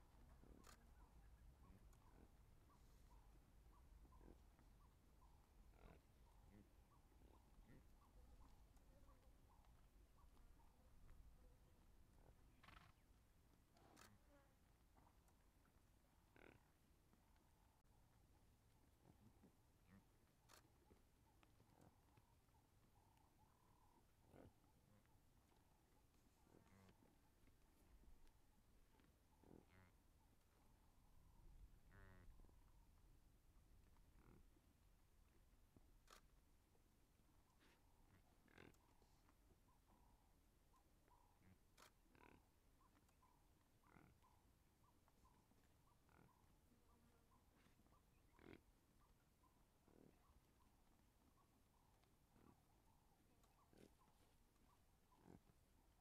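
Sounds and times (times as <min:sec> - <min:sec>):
zebra grazing: 0:00.0 - 0:56.0.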